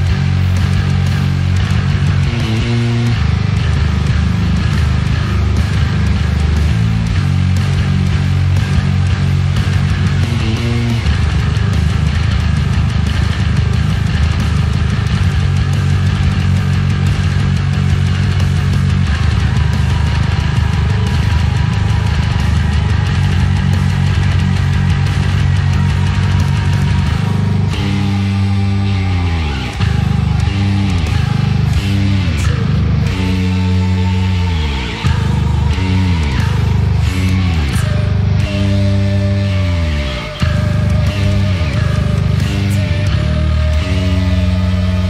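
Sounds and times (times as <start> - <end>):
heavy metal bass riff: 0.0 - 45.0
metal song recording: 0.0 - 45.0.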